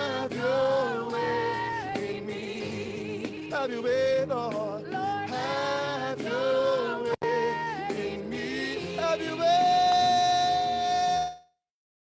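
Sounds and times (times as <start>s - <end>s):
band accompaniment: 0.0s - 11.3s.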